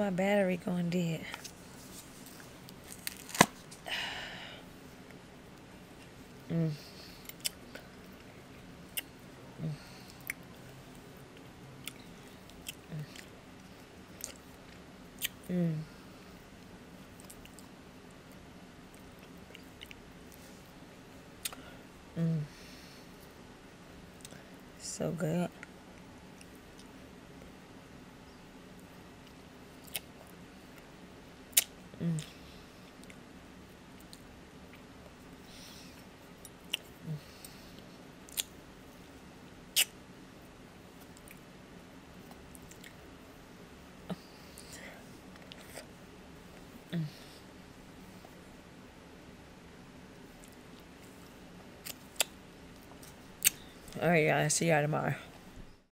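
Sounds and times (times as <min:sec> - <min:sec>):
person humming mm: 0:06.4 - 0:07.1, 0:09.6 - 0:10.0, 0:12.9 - 0:13.2, 0:15.4 - 0:16.0, 0:21.4 - 0:22.7, 0:32.0 - 0:32.4, 0:37.0 - 0:37.4, 0:46.9 - 0:47.4.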